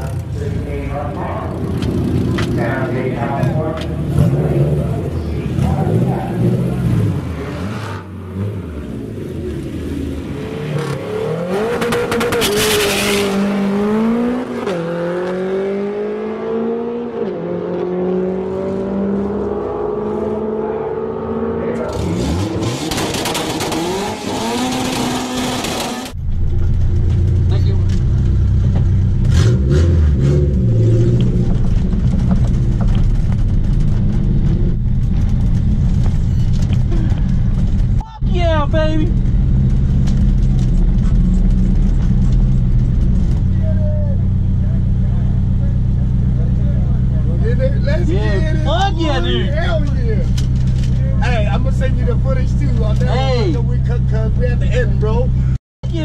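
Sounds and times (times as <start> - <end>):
car engine accelerating: 0.0 - 56.0.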